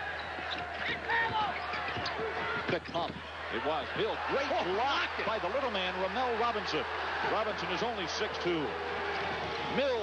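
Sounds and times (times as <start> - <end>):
crowd noise in arena: 0.0 - 10.0
shoe squeaks on court: 0.2 - 3.1.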